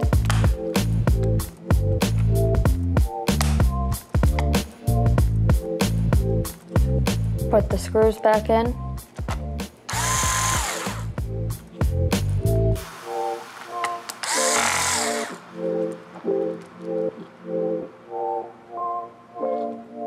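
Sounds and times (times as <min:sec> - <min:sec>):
background music: 0:00.0 - 0:20.0
electric screwdriver motor whine: 0:09.9 - 0:11.1, 0:14.2 - 0:15.5.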